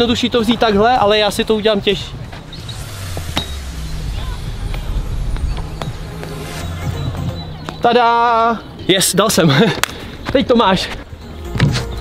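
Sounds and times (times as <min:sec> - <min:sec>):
low outdoor rumble: 0:00.0 - 0:08.8.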